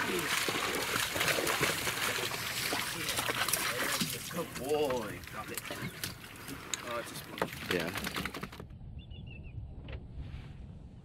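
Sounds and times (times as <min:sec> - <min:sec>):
dog splashing through shallow water: 0:00.0 - 0:08.5.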